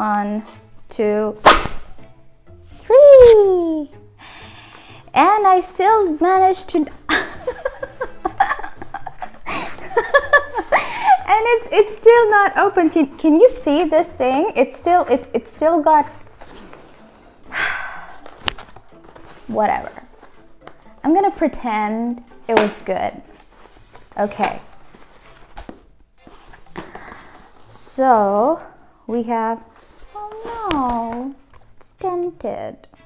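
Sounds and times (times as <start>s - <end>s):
woman laughing: 7.1s - 11.4s
book packaging rustling: 16.0s - 17.1s, 18.0s - 21.6s, 22.2s - 27.8s, 29.6s - 31.8s.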